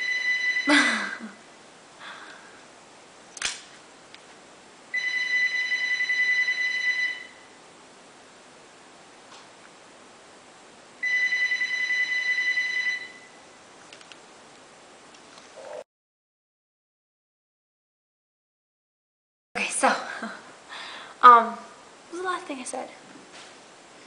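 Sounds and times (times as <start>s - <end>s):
phone ringing: 0.0s - 1.0s, 4.9s - 7.5s, 11.0s - 13.4s.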